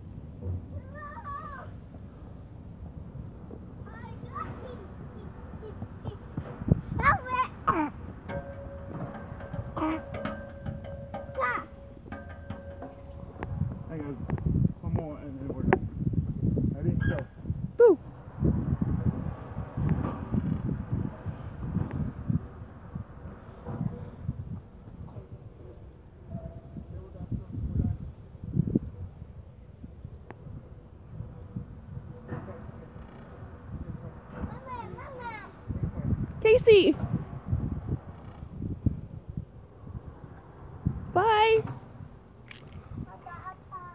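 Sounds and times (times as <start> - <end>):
wind buffeting microphone: 0.0 - 43.9
swing chains clicking: 8.2 - 13.6.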